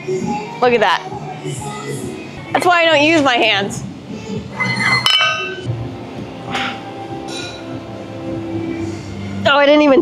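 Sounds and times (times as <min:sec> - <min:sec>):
weight plate clinking on barbell: 0:04.7 - 0:05.6.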